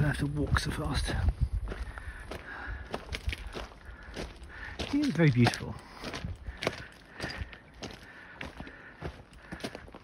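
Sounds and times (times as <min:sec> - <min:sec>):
footsteps on rocky gravel: 0:00.0 - 0:10.0.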